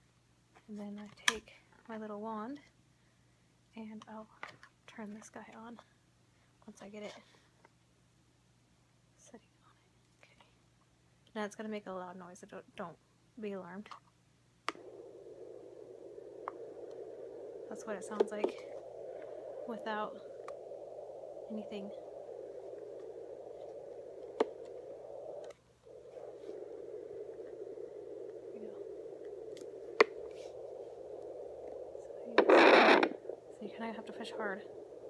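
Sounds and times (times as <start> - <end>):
static hiss from speaker: 0.0 - 7.8, 8.6 - 35.0.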